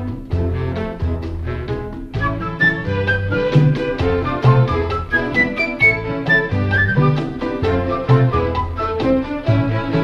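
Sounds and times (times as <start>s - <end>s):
percussion beat: 0.0s - 10.0s
flute playing melody: 2.2s - 10.0s
violins playing melody: 2.2s - 10.0s.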